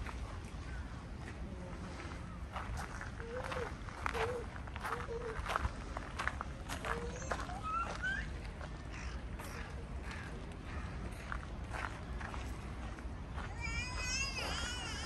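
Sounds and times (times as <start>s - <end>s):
faint voices: 0.0s - 15.0s
footsteps clicking on a path: 0.0s - 15.0s.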